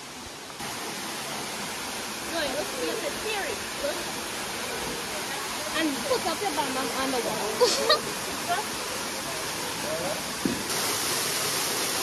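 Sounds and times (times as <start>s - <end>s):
waterfall rushing: 0.0s - 12.0s.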